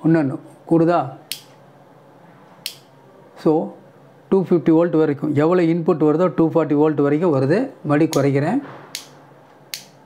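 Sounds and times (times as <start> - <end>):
man speaking: 3.4 - 8.6.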